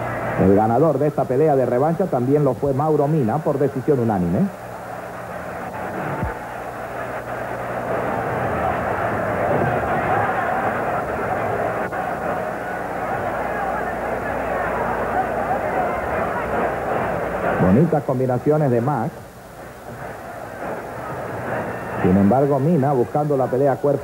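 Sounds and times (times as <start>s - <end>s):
low steady hum: 0.0s - 24.0s
stadium crowd roar: 0.0s - 24.0s.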